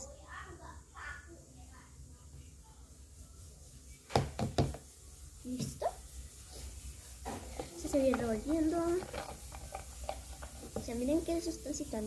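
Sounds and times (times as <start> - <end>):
girl speaking: 0.0 - 2.0, 7.6 - 9.1, 10.7 - 12.0
plastic cup and bottle knocks: 4.1 - 4.8.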